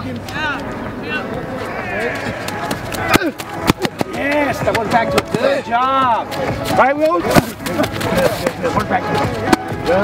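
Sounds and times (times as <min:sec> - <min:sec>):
players calling and shouting: 0:00.1 - 0:10.0.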